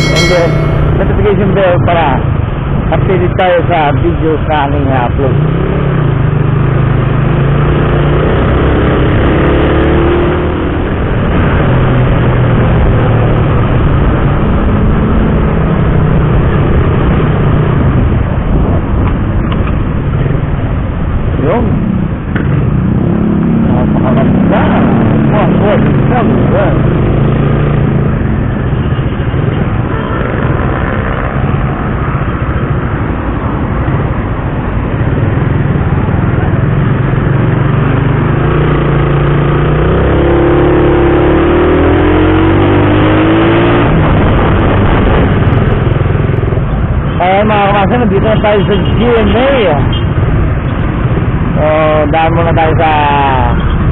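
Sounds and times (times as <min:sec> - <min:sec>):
road and wind noise: 0:00.0 - 0:53.9.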